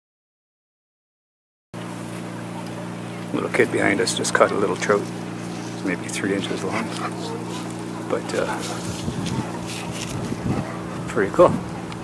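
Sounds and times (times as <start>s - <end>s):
low motor hum: 1.8s - 12.0s.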